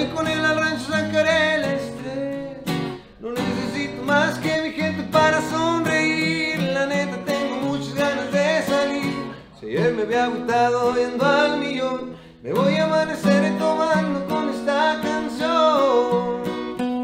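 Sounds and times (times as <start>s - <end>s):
man singing: 0.0s - 17.0s
strummed acoustic guitar: 0.0s - 17.0s.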